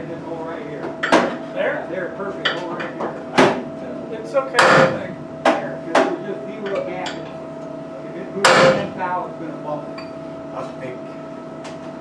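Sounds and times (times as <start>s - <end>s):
steady high hum: 0.0s - 12.0s
hammer striking metal: 4.6s - 5.6s, 8.4s - 9.0s.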